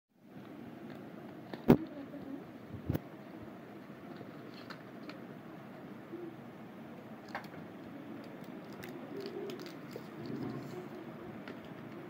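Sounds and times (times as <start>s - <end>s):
low background noise: 0.2s - 12.0s.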